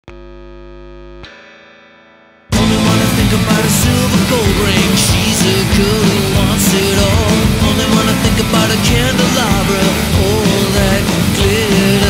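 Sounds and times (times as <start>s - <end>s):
distorted guitar chords: 0.0s - 12.0s.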